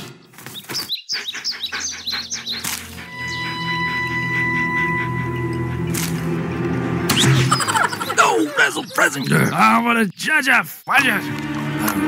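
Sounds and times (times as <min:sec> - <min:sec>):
small bird chirps: 0:00.0 - 0:03.9
background music with held notes: 0:01.4 - 0:08.4, 0:10.9 - 0:12.0.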